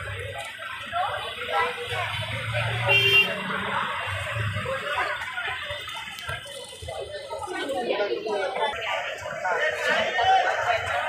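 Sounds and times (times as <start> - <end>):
market background hum: 0.0 - 11.0.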